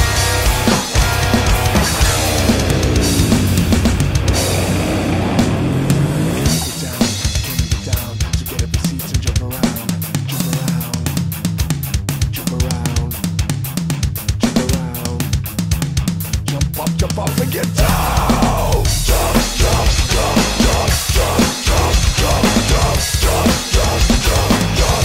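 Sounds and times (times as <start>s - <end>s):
heavy metal music: 0.0s - 25.0s
rapid drum hits: 0.0s - 25.0s.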